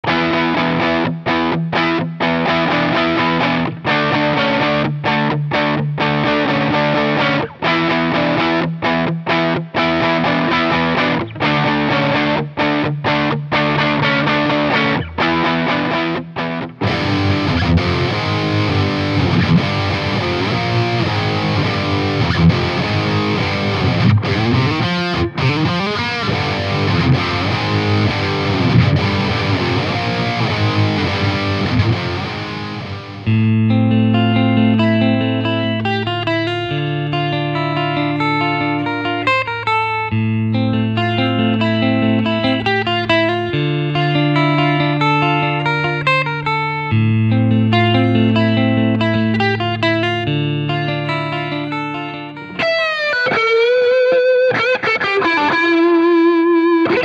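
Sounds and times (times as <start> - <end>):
clean electric guitar picked notes: 0.0 - 57.0
distorted electric guitar: 0.0 - 57.0.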